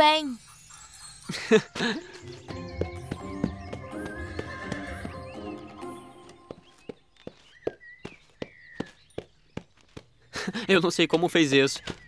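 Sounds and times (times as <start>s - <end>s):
background music: 0.0s - 7.1s
horse hooves clopping: 1.8s - 10.2s.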